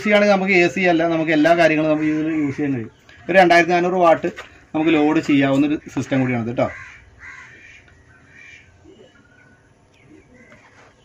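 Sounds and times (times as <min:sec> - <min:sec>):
faint bird calls: 0:01.6 - 0:03.7, 0:05.6 - 0:11.0.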